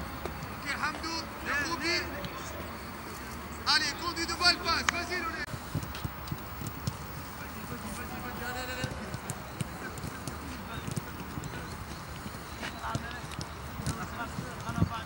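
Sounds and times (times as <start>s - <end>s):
players' footsteps: 0.1s - 15.0s
distant shouts: 0.4s - 5.5s
footballs being kicked: 5.5s - 15.0s.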